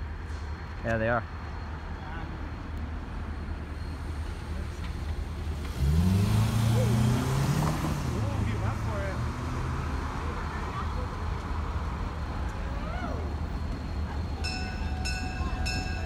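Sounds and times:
car accelerating past: 5.5 - 10.4.

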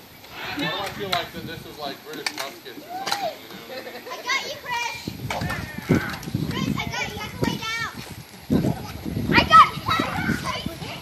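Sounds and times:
children shouting and squealing: 2.8 - 11.0.

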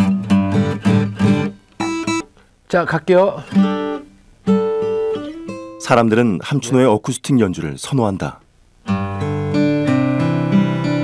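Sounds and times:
acoustic guitar notes: 0.0 - 11.0.

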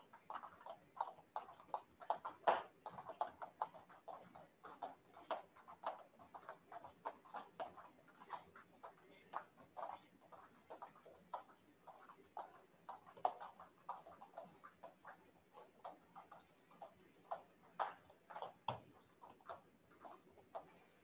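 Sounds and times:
jump ropes hitting foam mats: 1.6 - 4.3.

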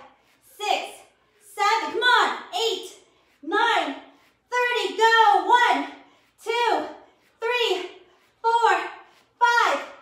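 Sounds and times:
woman counting aloud: 0.5 - 10.0.

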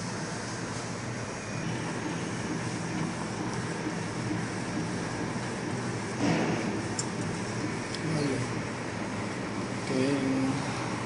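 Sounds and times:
printer mechanical hum and whir: 0.0 - 11.0.

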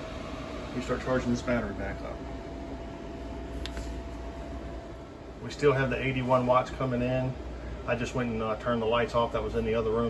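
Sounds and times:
fan hum with low rumble: 0.0 - 10.0.

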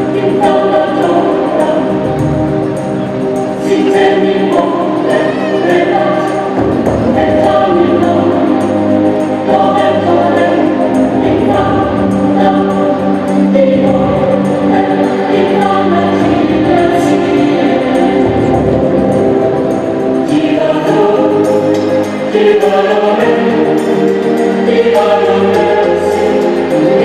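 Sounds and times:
choir singing held chords: 0.0 - 27.0.

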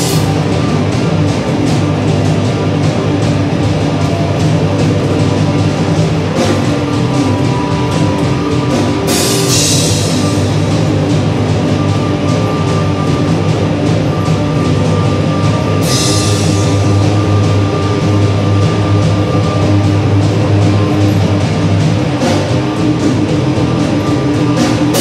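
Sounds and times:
rock band playing: 0.0 - 25.0.

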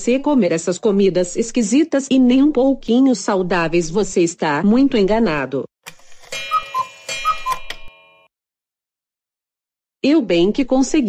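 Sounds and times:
ringing chime notes: 6.2 - 8.3
clock ticking: 6.3 - 7.9.

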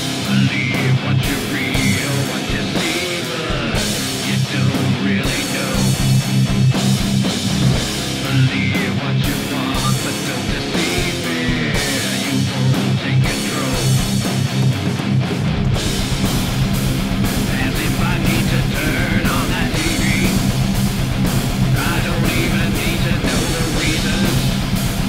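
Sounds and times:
heavy rock music: 0.0 - 25.0.

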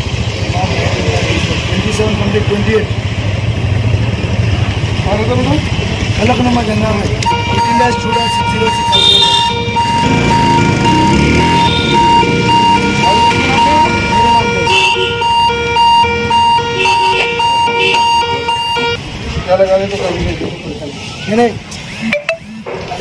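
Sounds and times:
electronic phone tune beeping: 7.3 - 14.5, 15.2 - 19.0, 22.0 - 22.6.

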